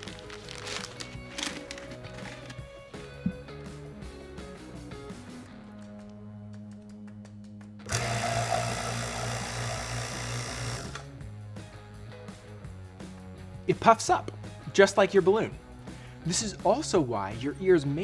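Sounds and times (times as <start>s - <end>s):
background music: 0.0s - 18.0s
vacuum pump humming: 7.9s - 11.1s.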